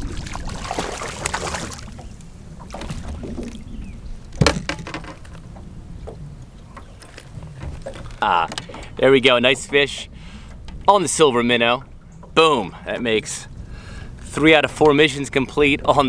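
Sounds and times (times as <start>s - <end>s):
fish thrashing at surface: 0.0s - 2.0s
water splashing: 0.0s - 5.3s
wind rumble on microphone: 0.0s - 8.2s.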